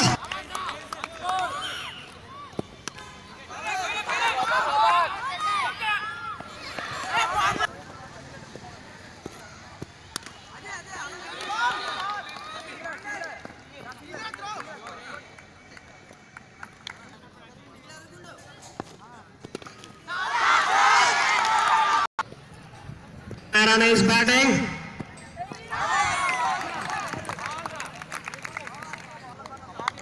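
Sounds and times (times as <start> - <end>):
voices shouting together: 20.1 - 22.1.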